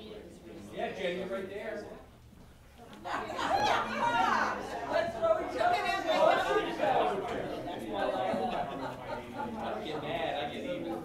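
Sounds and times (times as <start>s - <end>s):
indistinct overlapping chatter: 0.0s - 11.0s.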